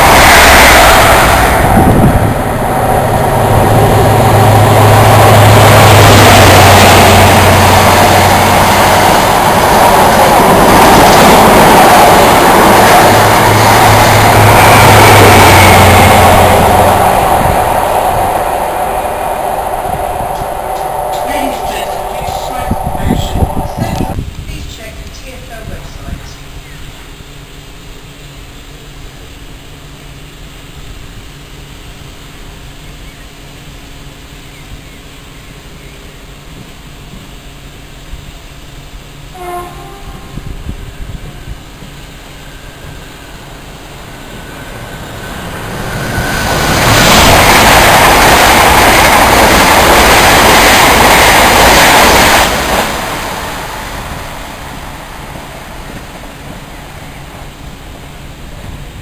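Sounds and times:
train passing roar: 0:00.0 - 0:59.0
train horn toot: 0:39.3 - 0:40.6.

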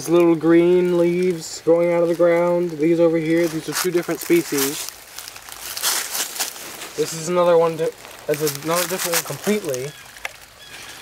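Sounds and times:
dry leaves rustling: 0:00.0 - 0:11.0.

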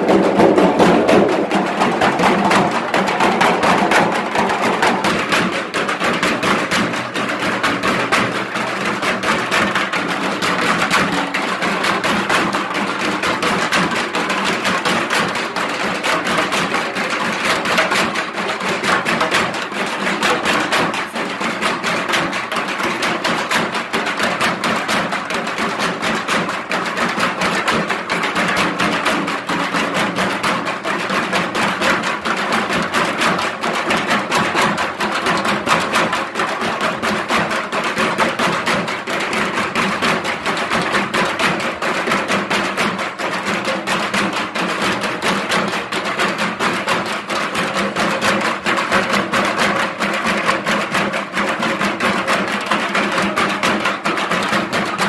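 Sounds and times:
fast continuous drumming: 0:00.0 - 0:55.0.

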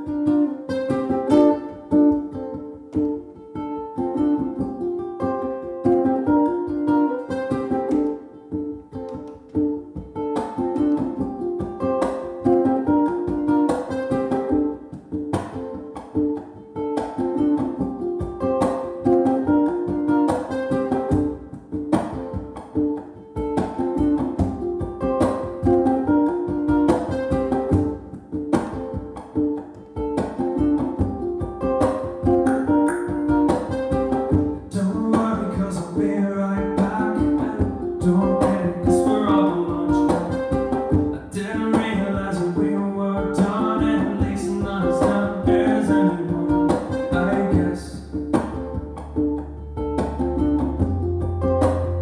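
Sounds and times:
ukulele picking a riff: 0:00.0 - 0:52.0.

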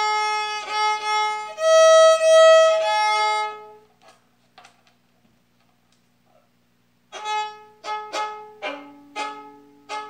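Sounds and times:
solo violin playing: 0:00.0 - 0:03.9, 0:07.1 - 0:10.0.

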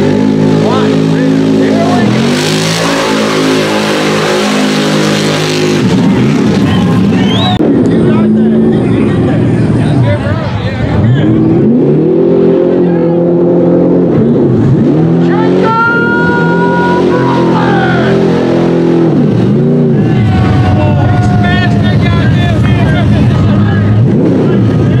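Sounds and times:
truck engine revving: 0:00.0 - 0:25.0.

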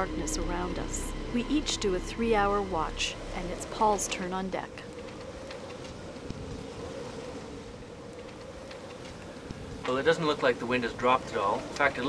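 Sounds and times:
constant hum: 0:00.0 - 0:12.0
faint clicks: 0:08.1 - 0:12.0.

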